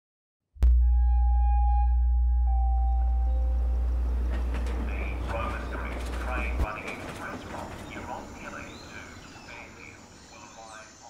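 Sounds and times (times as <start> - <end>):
clear high tone: 0.6 - 4.2
sudden synthesized hit: 0.6 - 4.3
loud deep hum: 0.6 - 6.7.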